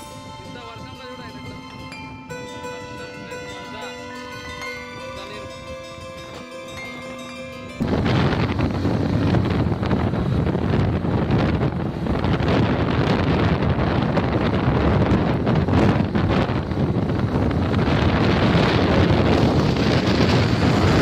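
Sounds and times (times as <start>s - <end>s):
wind buffeting microphone: 0.0s - 21.0s
motorcycle engines running: 2.5s - 21.0s.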